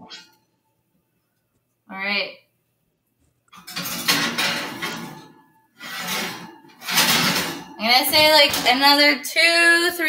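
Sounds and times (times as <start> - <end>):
metal kitchenware clattering: 3.6 - 9.3.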